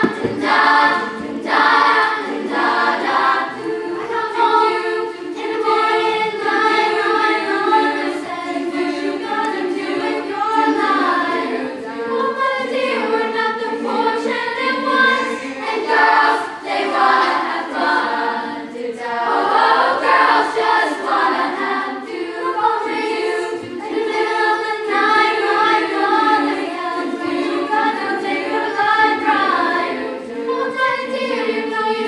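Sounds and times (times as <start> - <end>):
girls' choir singing: 0.0 - 32.0.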